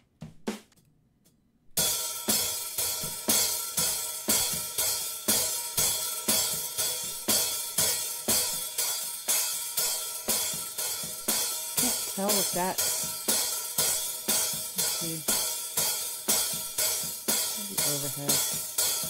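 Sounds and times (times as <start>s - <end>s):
hi-hat strokes: 1.8s - 19.0s.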